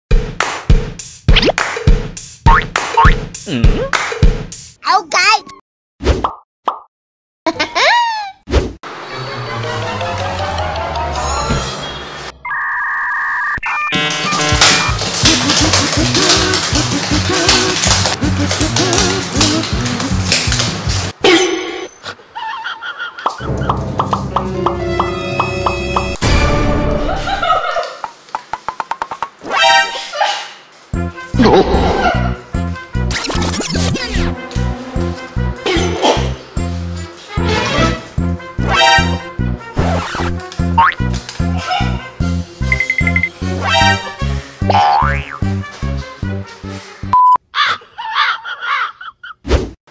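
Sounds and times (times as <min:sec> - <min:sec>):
loud beat with deep bass: 0:00.1 - 0:04.8
cartoon pops: 0:01.3 - 0:01.6, 0:02.5 - 0:03.9, 0:44.7 - 0:45.4.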